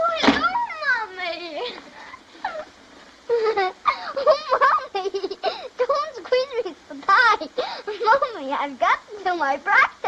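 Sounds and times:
girl exclaiming: 0.0 - 1.8.

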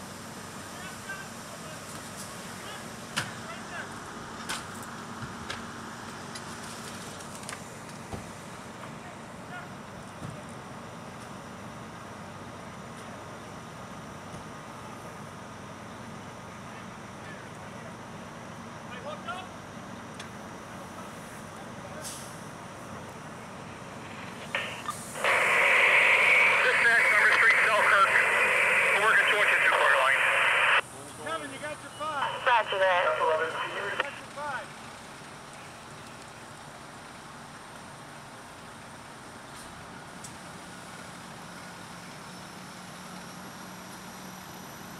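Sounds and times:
fire engine rumbling: 0.0 - 44.0
radio static with garbled voice: 24.0 - 30.8, 31.8 - 34.6
low steady background hiss: 31.9 - 34.2.

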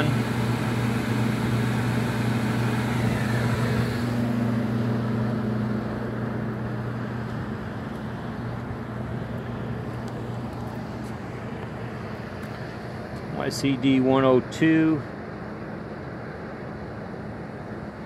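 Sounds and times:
air conditioning unit humming: 0.0 - 18.0.

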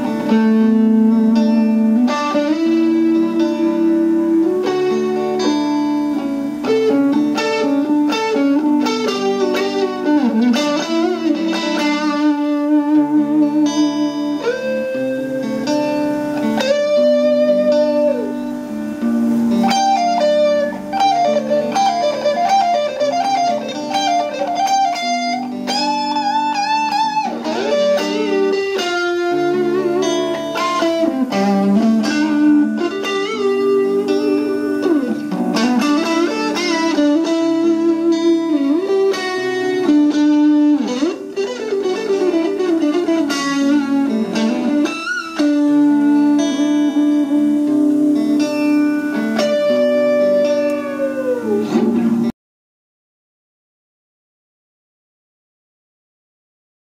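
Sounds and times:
electric guitar lead line: 0.0 - 52.4.

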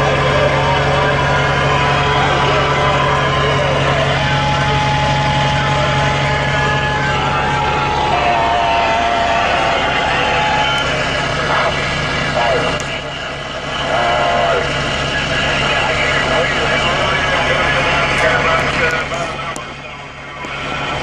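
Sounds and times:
truck engine droning: 0.0 - 21.0
broken radio voice: 10.3 - 20.6.

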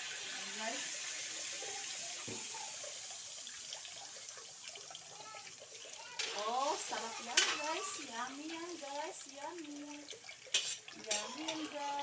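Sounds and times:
food sizzling in a wok: 0.0 - 12.0.

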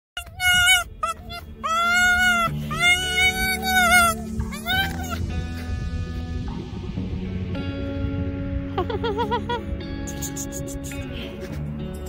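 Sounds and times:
fox whining calls: 0.2 - 5.7
background music: 0.2 - 12.0.

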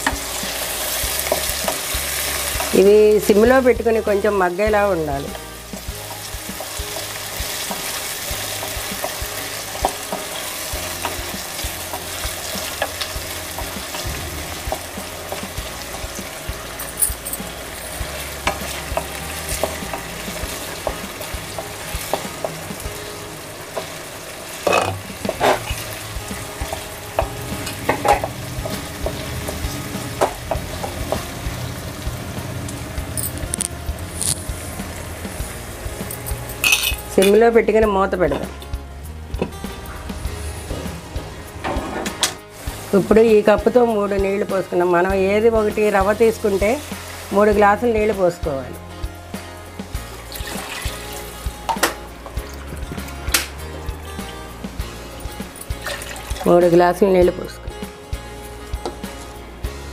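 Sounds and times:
vegetables sizzling in oil: 0.0 - 59.9.

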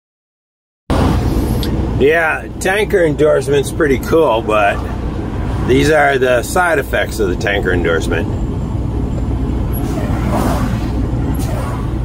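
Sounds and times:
road noise inside cab: 0.9 - 12.0
truck diesel engine rumble: 0.9 - 12.0.

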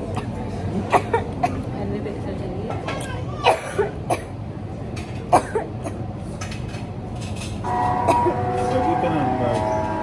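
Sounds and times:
person coughing: 5.3 - 6.0.

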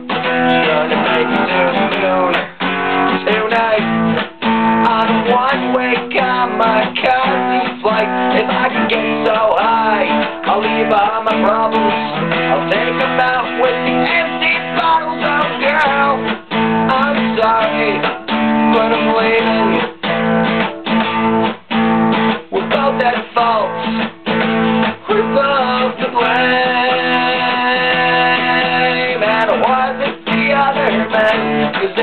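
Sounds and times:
man singing: 0.0 - 20.7, 22.2 - 32.0
acoustic guitar strumming chords: 0.0 - 32.0.

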